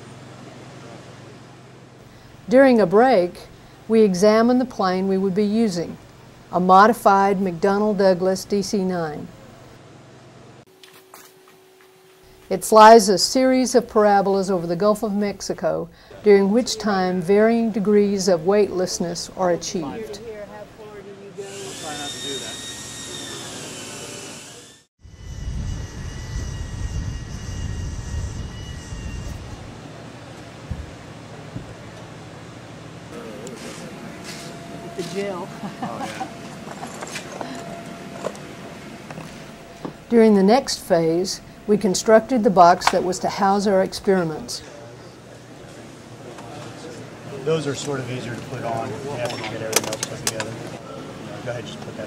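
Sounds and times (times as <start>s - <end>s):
jet turbine whine: 19.6s - 43.0s.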